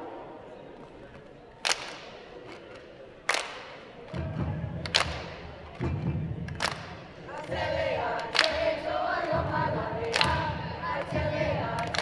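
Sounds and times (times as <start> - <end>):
low chanting voice: 7.1 - 12.0.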